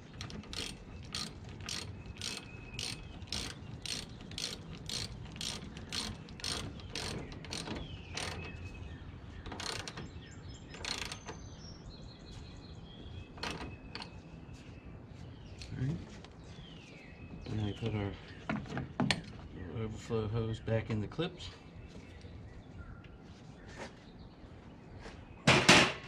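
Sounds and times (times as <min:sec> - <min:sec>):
ratchet wrench clicking: 0:00.1 - 0:08.5, 0:10.8 - 0:11.3.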